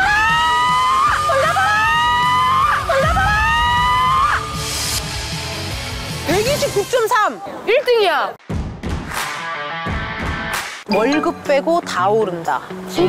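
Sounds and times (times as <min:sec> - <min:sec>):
woman screaming: 0:00.0 - 0:04.6
background music: 0:00.0 - 0:13.0.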